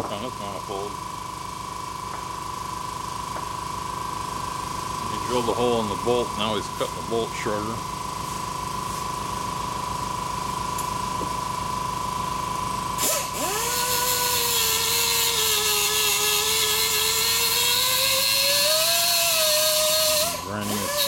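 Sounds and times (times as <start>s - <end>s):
pneumatic cut-off tool whining: 12.6s - 21.0s.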